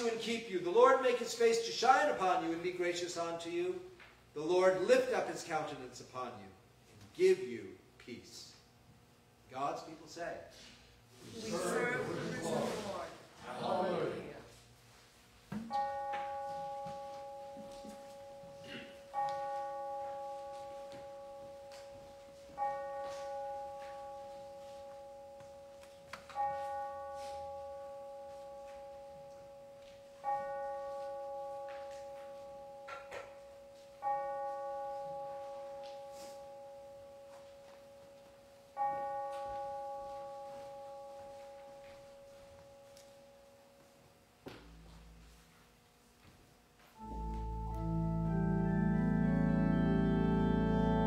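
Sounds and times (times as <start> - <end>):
bell strokes ringing: 15.7 - 43.4.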